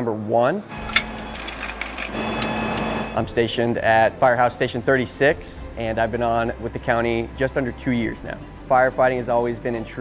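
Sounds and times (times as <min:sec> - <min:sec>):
hose coupling clicks: 0:00.7 - 0:02.9
fire engine running: 0:00.7 - 0:03.3
steady hum: 0:00.7 - 0:03.8.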